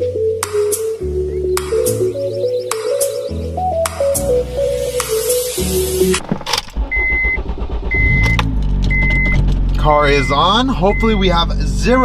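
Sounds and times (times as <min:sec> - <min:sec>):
car engine idling: 0:05.6 - 0:12.0
starter clicks: 0:06.1 - 0:10.4
car warning chime beeping: 0:06.8 - 0:11.5.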